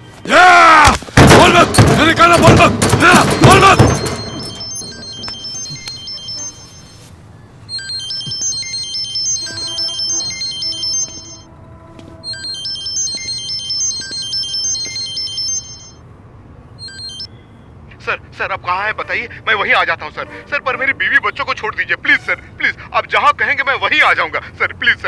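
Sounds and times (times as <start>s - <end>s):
melodic phone ringtone: 2.4s - 16.0s, 16.8s - 17.4s.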